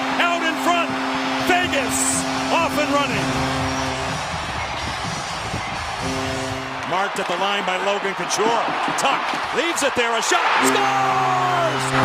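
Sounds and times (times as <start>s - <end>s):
crowd cheering: 0.0s - 12.0s
music over sound system: 0.6s - 6.8s.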